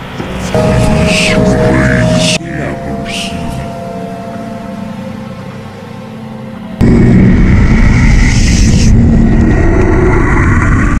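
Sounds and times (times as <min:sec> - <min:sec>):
low hum: 0:00.0 - 0:11.0
loud blast with distorted rumble: 0:06.8 - 0:11.0.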